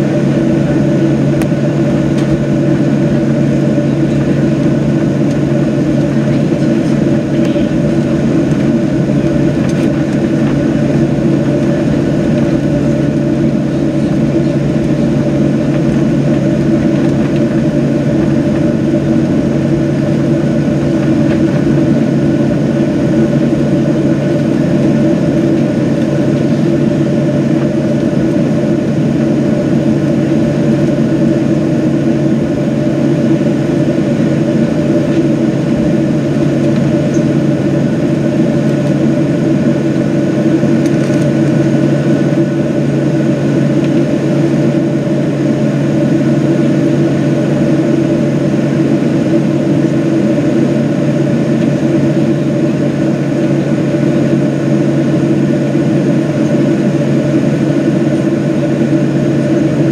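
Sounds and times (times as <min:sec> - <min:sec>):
jet engine cabin hum with whine: 0:00.0 - 0:59.9.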